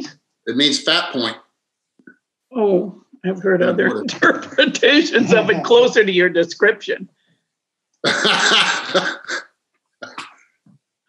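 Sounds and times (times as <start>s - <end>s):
breathy loud laughter: 8.1s - 9.4s.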